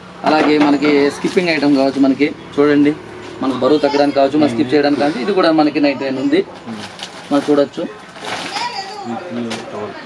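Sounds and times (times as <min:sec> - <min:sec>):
people talking: 0:00.2 - 0:10.0.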